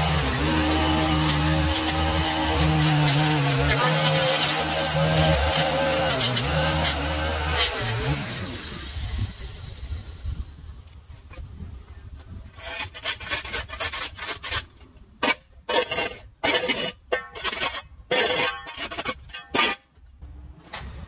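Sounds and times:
shovel scraping concrete: 0.0 - 9.3, 12.5 - 20.1.

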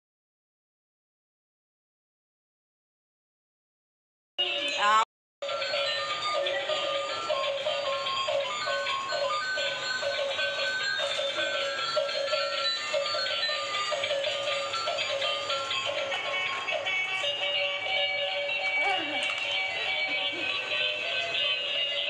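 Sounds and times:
tinny electronic toy tunes: 5.4 - 22.0.

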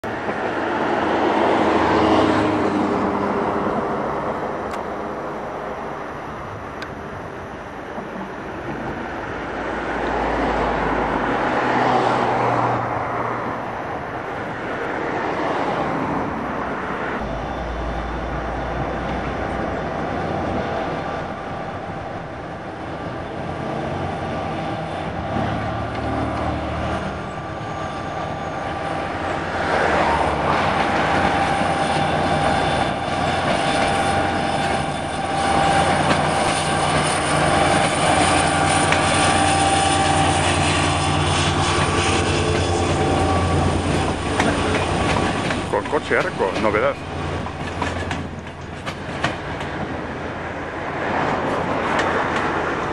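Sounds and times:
locomotive engine hum: 0.0 - 52.9
train wheels squealing: 17.2 - 21.8, 22.6 - 48.7.

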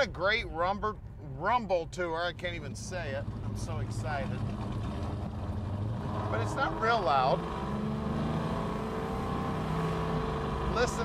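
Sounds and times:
car engine low rumble: 0.0 - 11.0
road and wind noise: 0.0 - 11.0.

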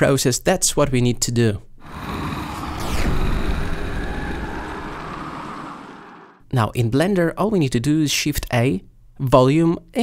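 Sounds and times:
large fire burning: 1.8 - 6.4.

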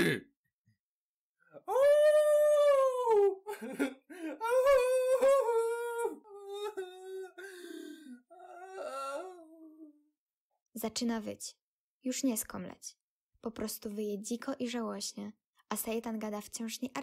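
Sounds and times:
man wailing and whimpering: 1.6 - 10.0.

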